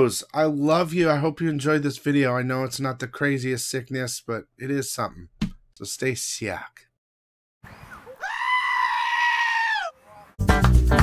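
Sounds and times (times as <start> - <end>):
high-pitched bleat-like scream: 8.1 - 10.2
music with bass and guitar: 10.4 - 11.0.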